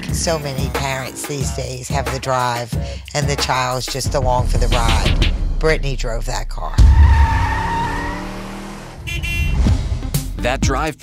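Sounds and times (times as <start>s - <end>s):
low rumble: 3.9s - 10.2s
car tyres screeching: 6.7s - 9.9s.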